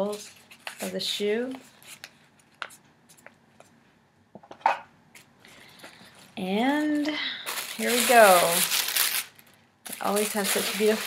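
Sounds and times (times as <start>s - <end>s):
paper bag and box rustling: 6.1s - 11.0s.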